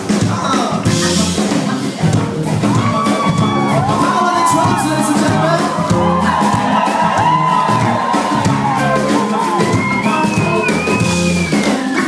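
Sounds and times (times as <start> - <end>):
live band playing: 0.0 - 12.0
crowd cheering: 2.6 - 12.0.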